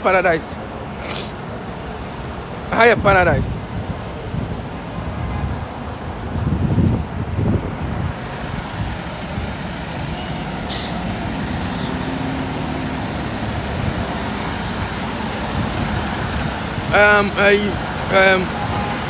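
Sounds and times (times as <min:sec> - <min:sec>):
rumble of passing vehicles: 0:00.0 - 0:19.0
short hisses: 0:01.0 - 0:01.4.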